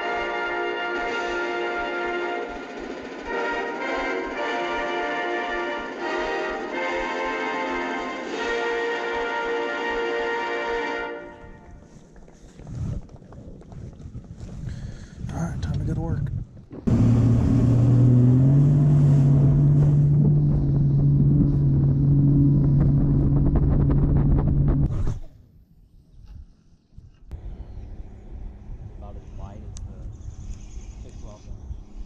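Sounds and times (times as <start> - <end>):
outboard motor running at speed: 16.9 - 24.9.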